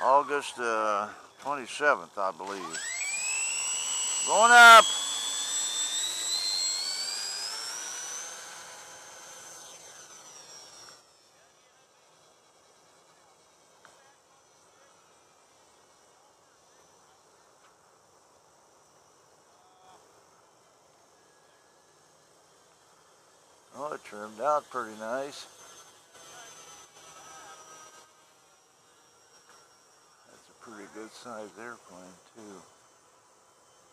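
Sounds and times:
model plane motors whining: 0.0 - 33.9.

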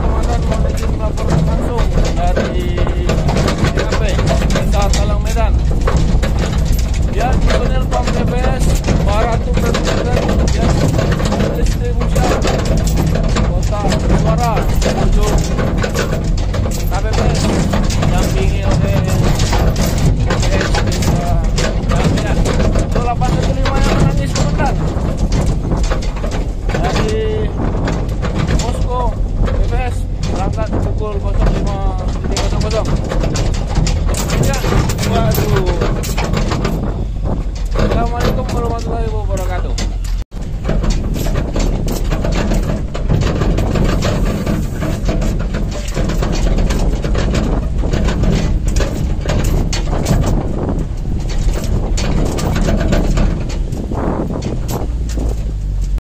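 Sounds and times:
indistinct voices: 0.0 - 55.4
truck engine and road noise: 0.0 - 56.0
wind buffeting microphone: 0.0 - 56.0.

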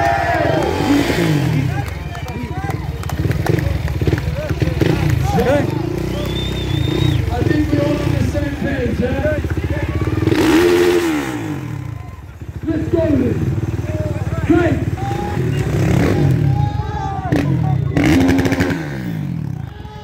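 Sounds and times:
dirt bike engines revving: 0.0 - 20.0
dirt bike moving off: 0.0 - 20.0.

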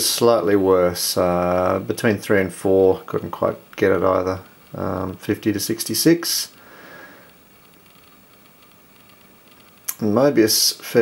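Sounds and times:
person speaking: 0.0 - 6.6, 9.9 - 11.0.

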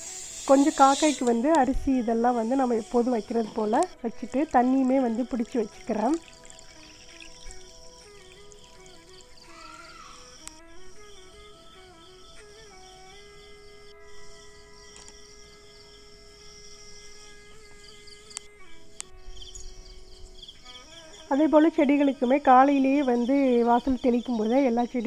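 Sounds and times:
insect chirring: 0.0 - 25.0
soft instrumental music: 0.0 - 25.0.

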